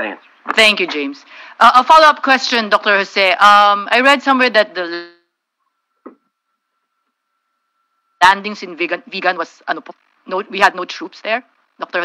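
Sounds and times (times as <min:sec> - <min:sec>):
faint high hum: 0:00.0 - 0:12.0
woman's voice: 0:00.5 - 0:05.2, 0:08.2 - 0:12.0.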